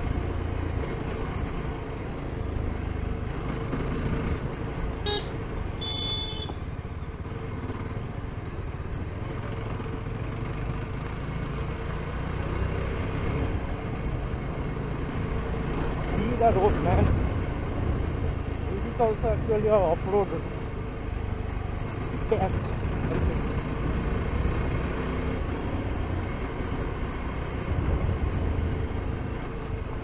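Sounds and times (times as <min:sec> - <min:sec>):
road and wind noise: 0:00.0 - 0:30.0.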